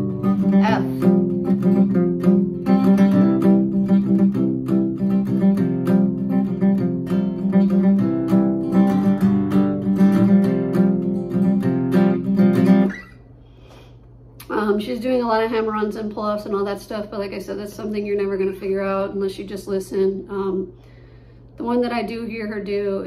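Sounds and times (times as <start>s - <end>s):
acoustic guitar strumming: 0.0s - 13.3s.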